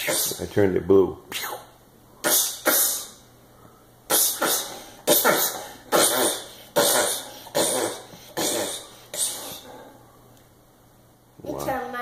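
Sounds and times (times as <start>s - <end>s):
child making hissing mouth sounds: 0.0s - 0.5s, 1.3s - 3.2s, 4.1s - 9.7s.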